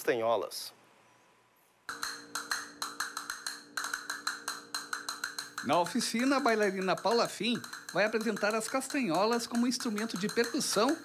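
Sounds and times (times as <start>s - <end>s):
castanets clicking: 1.9s - 11.0s.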